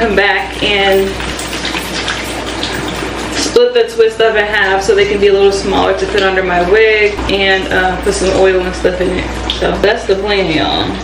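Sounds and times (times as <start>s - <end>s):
running water rushing: 0.0s - 10.3s.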